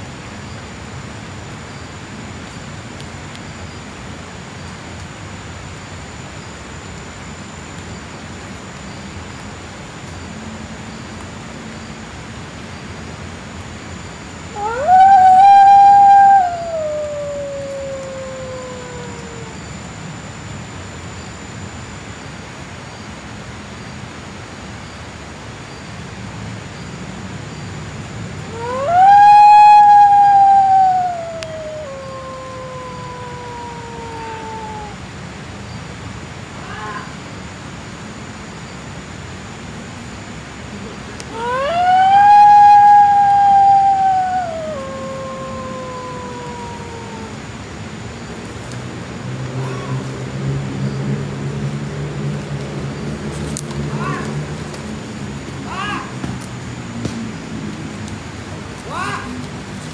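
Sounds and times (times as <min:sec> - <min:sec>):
animal howling: 0:14.5 - 0:19.9, 0:28.5 - 0:35.1, 0:41.3 - 0:47.6.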